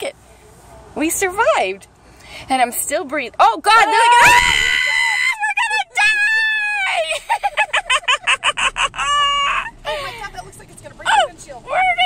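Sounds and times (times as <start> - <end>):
woman squealing: 3.9 - 7.1, 8.8 - 10.1
woman cackling laughter: 7.0 - 9.9.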